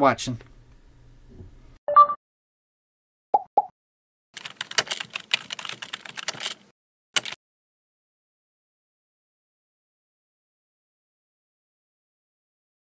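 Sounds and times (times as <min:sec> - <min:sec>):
rapid clicking: 0:04.4 - 0:07.4.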